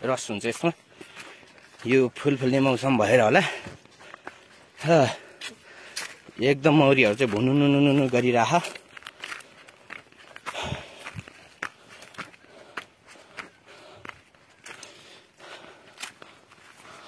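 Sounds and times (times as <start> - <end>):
footsteps on dirt path: 0.0 - 17.0.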